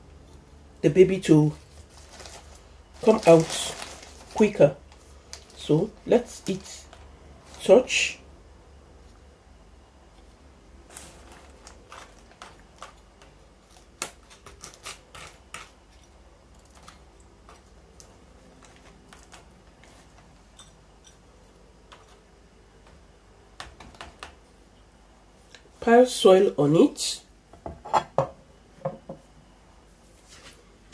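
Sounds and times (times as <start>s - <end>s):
potting soil clicks and scrapes: 1.4s - 7.8s.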